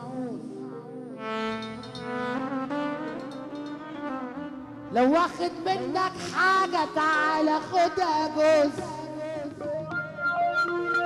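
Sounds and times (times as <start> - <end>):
person singing: 0.0 - 1.7, 4.9 - 11.0
electronic keyboard melody: 0.0 - 11.0.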